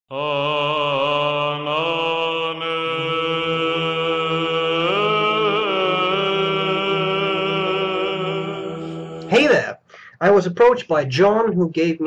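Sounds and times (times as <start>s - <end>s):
chant-like sung vocal: 0.1s - 9.6s.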